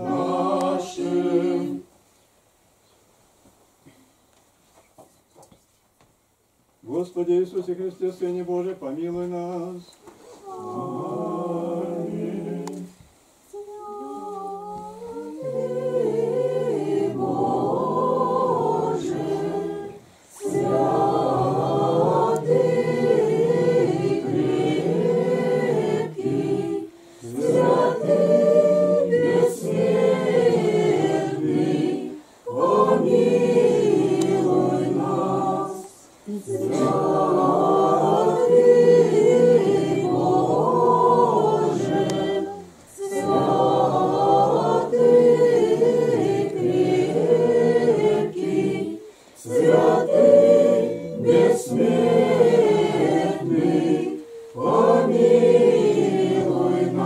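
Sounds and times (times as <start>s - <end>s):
congregation chanting a cappella: 0.0s - 1.9s, 6.8s - 57.0s.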